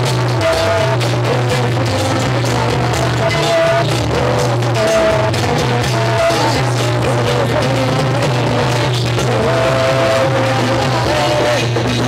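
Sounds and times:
loud dance music: 0.0s - 12.0s.

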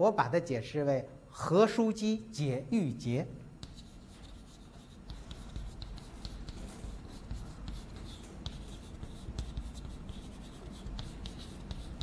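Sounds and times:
chalk scratching on chalkboard: 3.6s - 12.0s.

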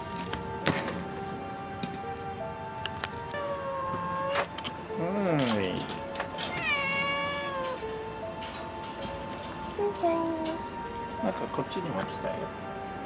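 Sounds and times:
background music: 0.0s - 13.0s
cat meowing: 3.3s - 4.5s, 6.5s - 7.9s.

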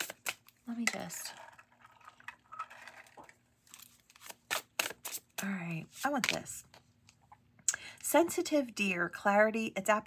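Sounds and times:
cards rustling: 3.6s - 5.4s.

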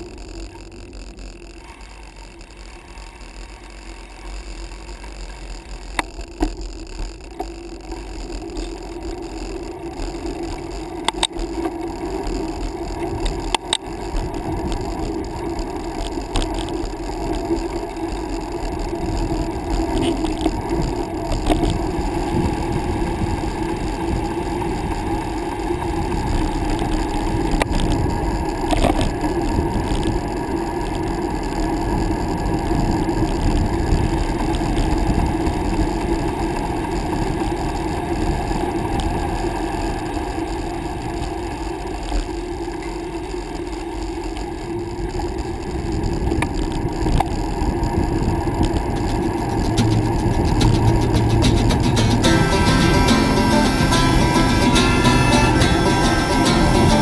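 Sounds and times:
tyres humming on asphalt: 0.0s - 57.0s
wind rushing over microphone: 9.0s - 53.1s
bicycle knocking over bumps: 48.6s - 52.3s.

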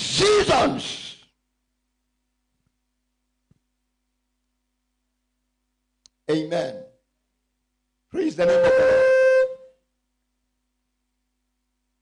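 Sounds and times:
man's voice through microphone: 6.2s - 7.0s, 8.2s - 8.7s.

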